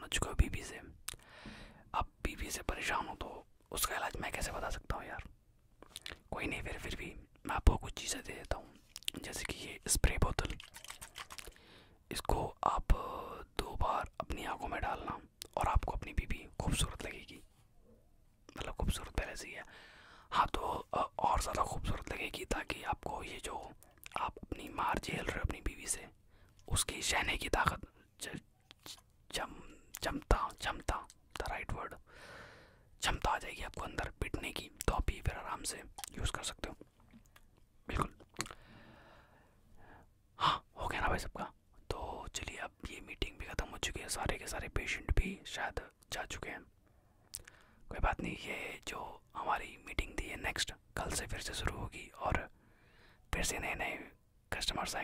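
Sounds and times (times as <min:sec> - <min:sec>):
man whispering: 0:00.0 - 0:10.7, 0:12.1 - 0:17.6, 0:18.5 - 0:32.1, 0:33.0 - 0:37.0, 0:37.8 - 0:38.6, 0:39.7 - 0:52.6, 0:53.3 - 0:55.0.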